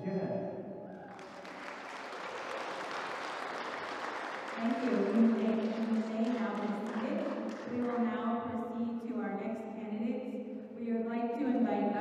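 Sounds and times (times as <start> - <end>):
audience clapping: 0.9 - 8.4
woman speaking: 4.6 - 12.0.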